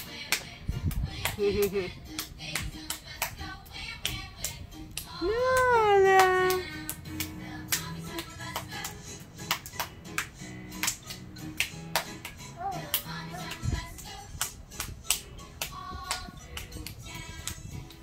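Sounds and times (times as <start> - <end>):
children's music: 0.0 - 18.0
child clapping hands: 0.3 - 3.4, 4.0 - 13.7, 14.4 - 18.0.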